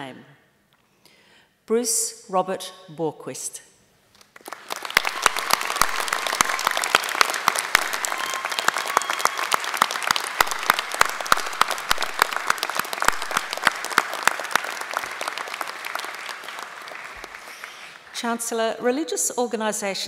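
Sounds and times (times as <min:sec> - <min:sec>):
audience applauding: 0:04.2 - 0:18.2.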